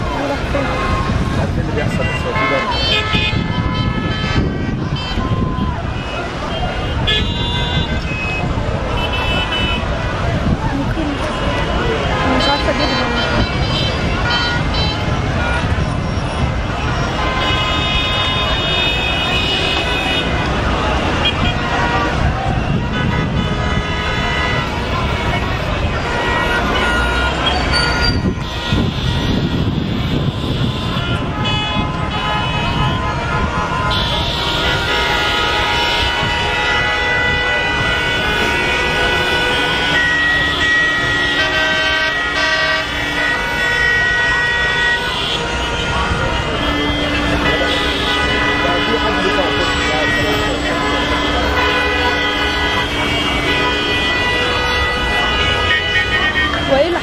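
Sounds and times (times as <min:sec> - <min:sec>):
car horns honking: 0:00.0 - 0:57.0
people's voices: 0:00.0 - 0:57.0
street traffic: 0:00.0 - 0:57.0.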